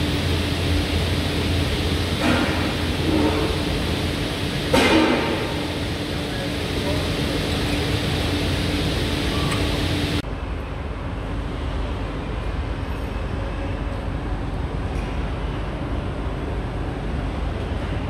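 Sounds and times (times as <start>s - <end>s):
low rumble of a large hall: 0.0s - 18.0s.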